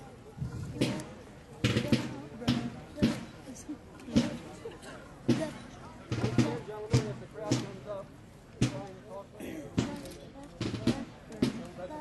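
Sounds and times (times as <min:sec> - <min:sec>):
voices talking: 0:00.0 - 0:08.0
drum beating slowly: 0:00.4 - 0:12.0.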